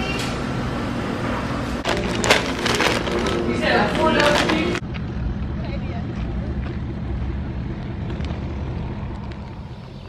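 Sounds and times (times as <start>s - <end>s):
vehicle engine running: 1.8s - 10.0s.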